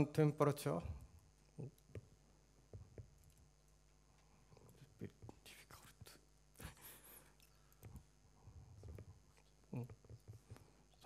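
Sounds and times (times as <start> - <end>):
soft breathy noises: 4.0 - 11.0.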